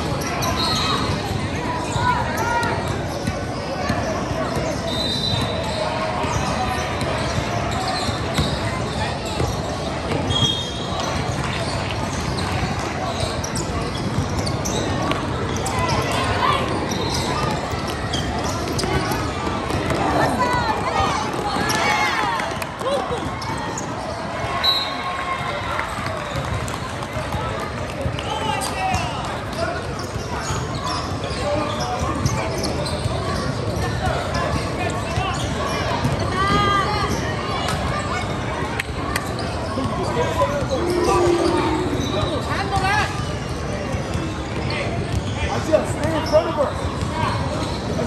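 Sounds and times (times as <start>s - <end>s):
people talking and calling out: 0.0s - 48.0s.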